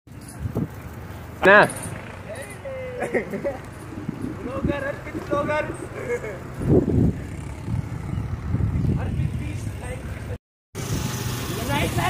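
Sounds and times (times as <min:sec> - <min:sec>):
wind rumbling on microphone: 0:00.2 - 0:01.0, 0:03.8 - 0:05.7, 0:06.5 - 0:11.2.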